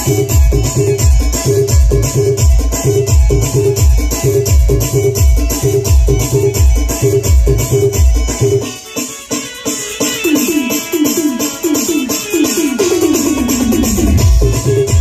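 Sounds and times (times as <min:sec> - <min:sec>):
heavy bass beat: 0:00.0 - 0:08.6, 0:12.8 - 0:15.0
high ticking percussion: 0:00.0 - 0:15.0
keyboard melody: 0:00.0 - 0:15.0.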